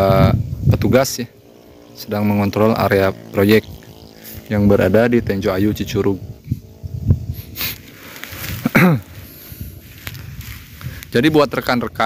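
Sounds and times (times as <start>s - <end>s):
wind rumble on microphone: 0.0s - 12.0s
person hesitation noise: 1.3s - 11.6s.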